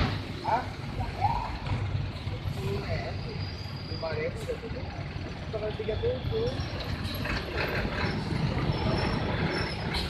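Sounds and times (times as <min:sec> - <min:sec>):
bus diesel engine rumbling: 0:00.0 - 0:10.0
voices nearby: 0:00.0 - 0:10.0.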